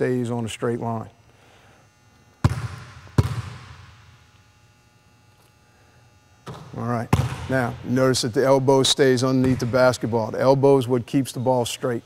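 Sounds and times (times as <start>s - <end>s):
basketball bouncing on gym floor: 2.4s - 4.1s, 6.4s - 7.9s, 9.3s - 10.1s.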